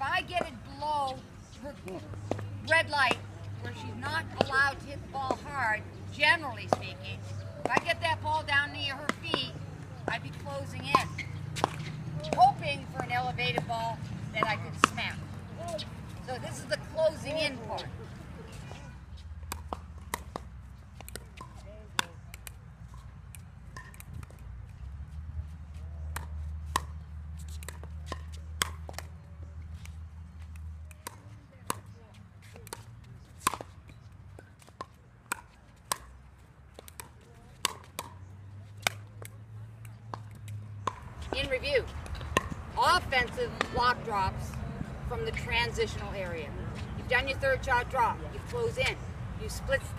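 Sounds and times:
ball bouncing on hard court: 0:09.0 - 0:13.8, 0:14.4 - 0:15.8, 0:36.8 - 0:38.2, 0:40.1 - 0:44.5.

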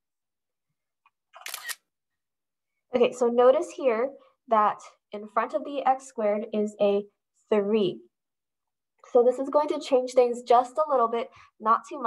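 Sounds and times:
camera shutter click: 0:01.4 - 0:01.8.

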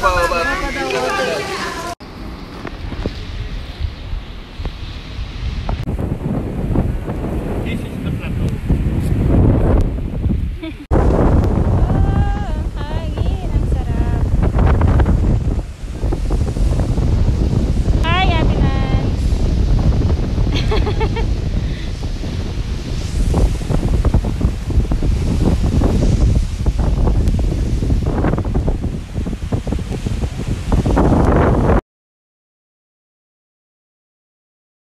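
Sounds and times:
bursts of voice: 0:00.0 - 0:02.0
surf breaking on rocks: 0:00.0 - 0:09.8, 0:10.8 - 0:31.8
wind buffeting microphone: 0:00.0 - 0:31.8.

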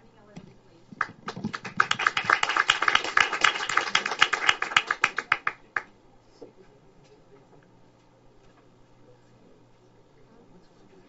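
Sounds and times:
small audience applauding: 0:01.0 - 0:05.9.

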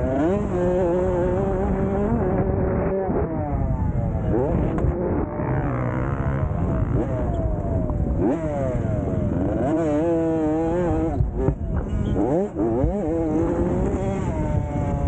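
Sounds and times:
dirt bike engine revving: 0:00.0 - 0:15.0.

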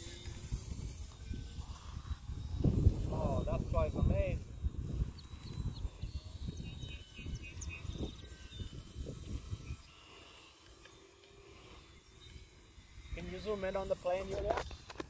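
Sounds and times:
wind buffeting microphone: 0:00.0 - 0:09.9
faint bird chirps: 0:05.0 - 0:10.4.

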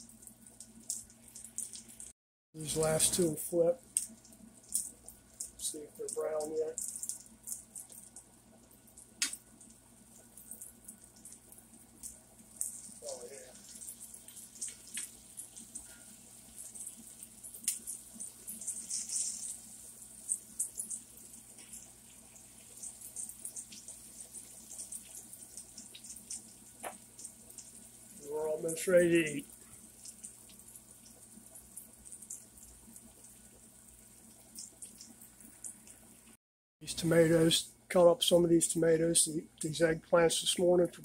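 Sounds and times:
eggplant frying in oil: 0:00.0 - 0:36.4.

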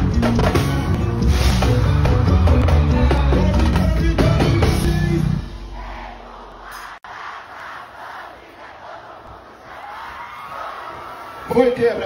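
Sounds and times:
concert crowd shouting and cheering: 0:01.6 - 0:12.0.

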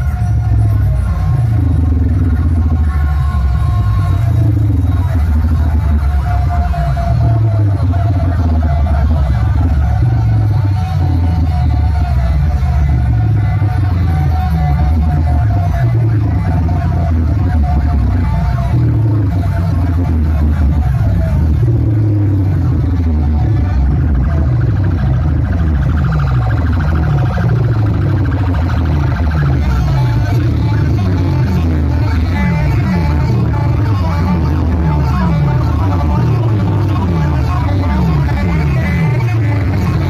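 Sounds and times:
loud dance music with heavy bass: 0:00.0 - 0:40.0.

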